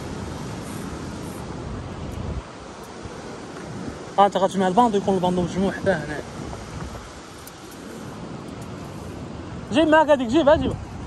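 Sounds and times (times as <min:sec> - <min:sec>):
sea surf breaking: 0:00.0 - 0:11.0
wind buffeting microphone: 0:00.0 - 0:11.0.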